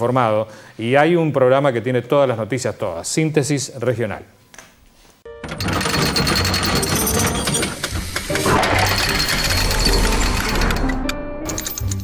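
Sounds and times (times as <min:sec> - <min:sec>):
rapid mechanical clattering: 0:05.5 - 0:12.0.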